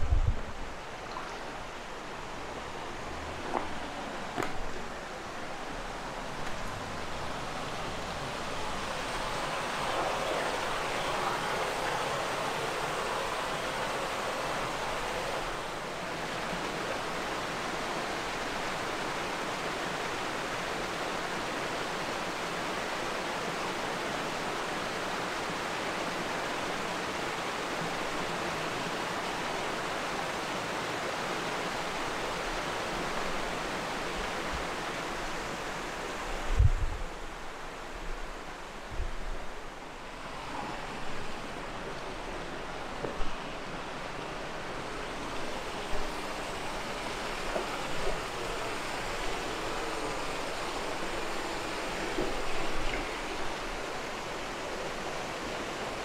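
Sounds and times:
waterfall splashing over rocks: 0.9 - 36.2, 40.0 - 56.0.

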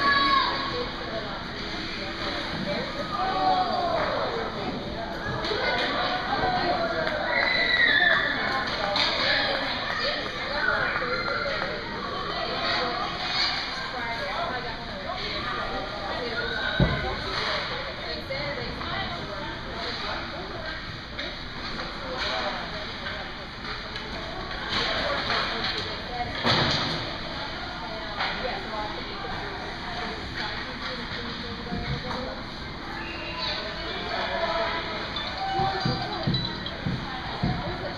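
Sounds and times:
children calling and chattering: 0.0 - 21.4, 27.2 - 37.9
steady background noise: 0.0 - 37.9.

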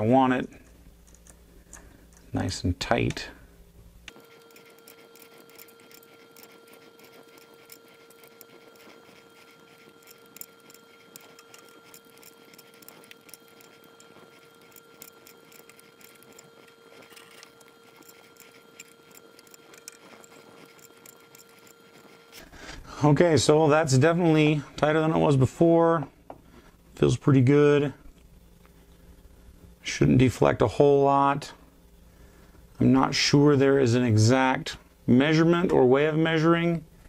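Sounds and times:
faint steady tone: 3.3 - 22.8.

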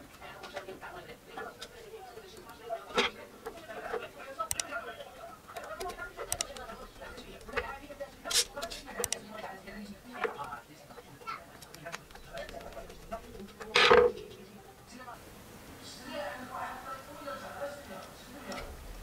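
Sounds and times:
small plastic clicks: 4.4 - 4.7, 5.6 - 7.8.

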